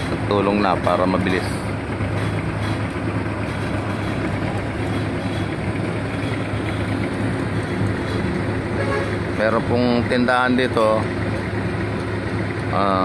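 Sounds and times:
low engine hum: 0.0s - 13.0s.

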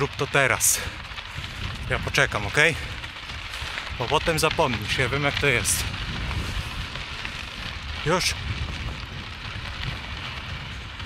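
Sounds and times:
bicycle tyres on dirt path: 0.0s - 11.0s
wind rumble on microphone: 0.0s - 11.0s.

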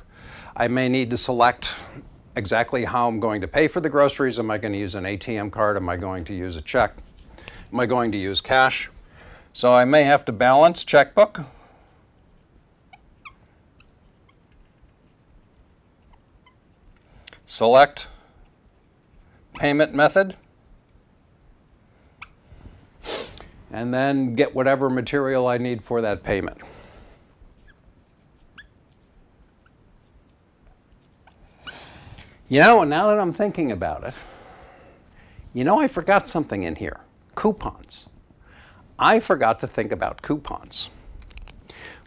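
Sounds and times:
marker squeaking on whiteboard: 12.3s - 17.1s, 27.5s - 32.0s.

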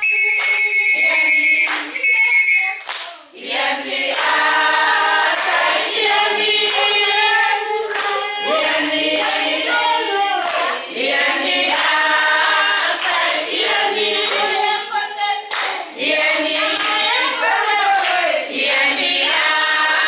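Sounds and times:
hand clapping: 0.0s - 3.3s, 4.0s - 4.5s, 5.2s - 8.4s, 9.1s - 10.8s, 11.6s - 12.1s, 12.8s - 14.6s, 15.5s - 15.9s, 16.7s - 18.4s, 19.2s - 19.7s
women singing in unison: 0.0s - 20.0s.

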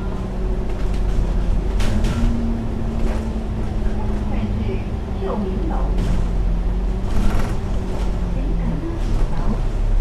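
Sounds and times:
bus engine drone: 0.0s - 10.0s
road noise: 0.0s - 10.0s.

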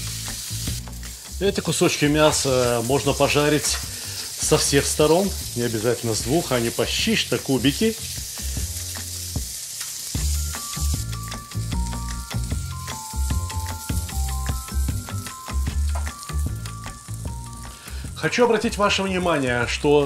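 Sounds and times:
music with plucked melody and bass: 0.0s - 3.9s, 10.2s - 20.0s
beef sizzling in a pan: 0.0s - 20.0s.

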